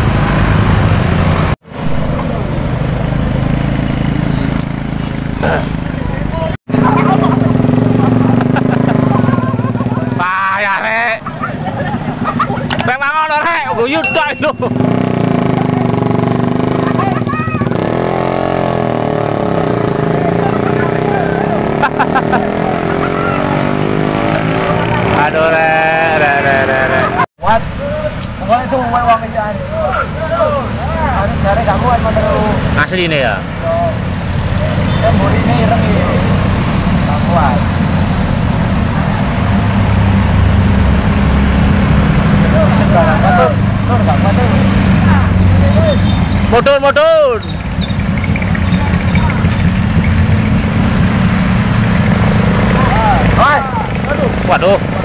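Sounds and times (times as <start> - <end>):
motorcycle engines revving: 0.0 - 55.0
people shouting: 16.9 - 17.8, 22.4 - 32.6, 52.7 - 53.9.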